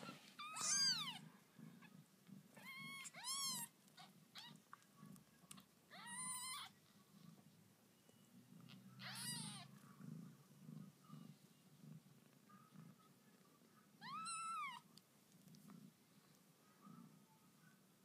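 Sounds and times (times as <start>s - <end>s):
cat purring: 0.0s - 17.6s
kittens mewing: 0.4s - 1.2s, 2.5s - 4.6s, 5.9s - 6.8s, 9.0s - 9.7s.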